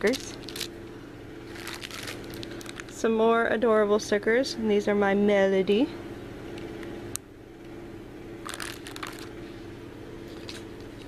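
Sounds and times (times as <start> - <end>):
plastic packaging crinkling: 0.0 - 0.8, 1.4 - 3.0, 8.4 - 9.4, 10.2 - 11.0
steady low hum: 0.0 - 11.0.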